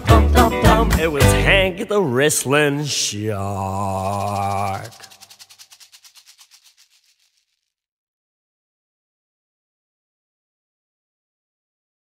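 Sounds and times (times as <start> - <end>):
rapid shaker rattle: 3.6 - 7.8.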